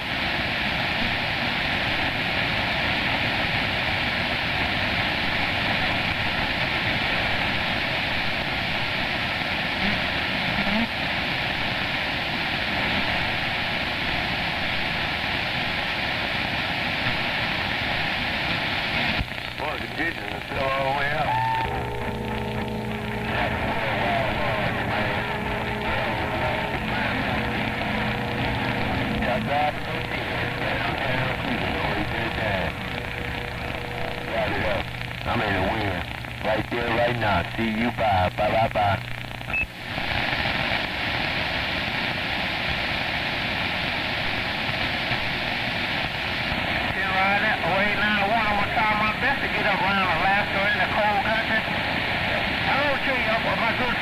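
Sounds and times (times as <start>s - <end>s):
radio static hiss: 0.0s - 54.0s
garbled warbling radio signals: 19.6s - 36.9s
radio whistling tones: 19.6s - 36.9s.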